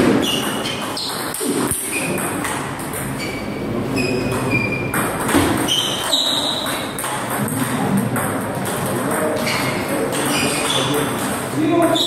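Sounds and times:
shoes squeaking on wooden floor: 3.0s - 7.0s, 9.3s - 12.0s.

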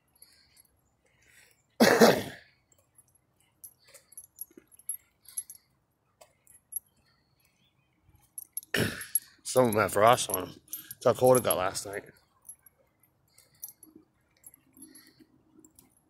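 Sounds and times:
faint light clicks and jingles: 0.0s - 1.8s, 2.6s - 16.0s
man coughing: 1.8s - 2.4s, 8.7s - 9.2s.

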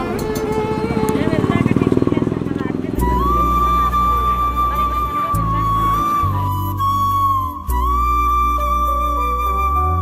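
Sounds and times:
engine running with fast pulse: 0.0s - 4.9s
people talking: 0.0s - 7.0s
background music with flute: 0.0s - 10.0s.

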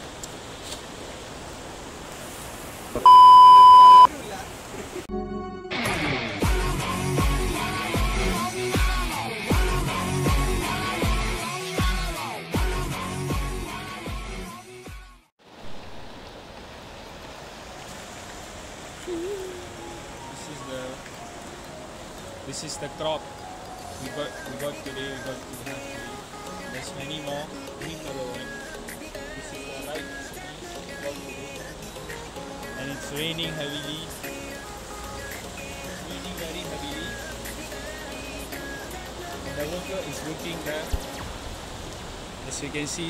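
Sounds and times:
steady hiss: 0.0s - 3.1s, 15.5s - 43.0s
electronic beep: 3.0s - 4.1s
guitar music: 5.1s - 10.4s
heavy rain on a plastic roof: 15.4s - 23.3s, 29.7s - 43.0s
person humming: 19.0s - 20.1s.

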